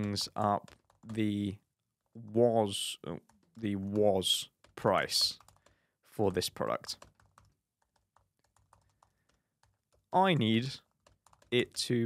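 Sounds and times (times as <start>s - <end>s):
typing on laptop keyboard: 0.0s - 12.0s.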